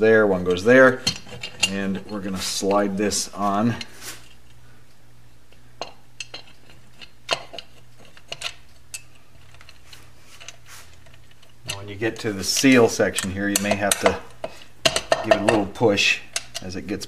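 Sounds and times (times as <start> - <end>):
steady low hum: 0.0 - 17.0
light metal clicks and taps: 5.5 - 16.8.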